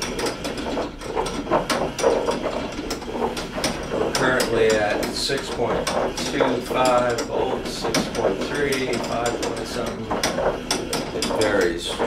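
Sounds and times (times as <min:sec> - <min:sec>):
rotating arm clicking and rattling: 0:00.0 - 0:12.0.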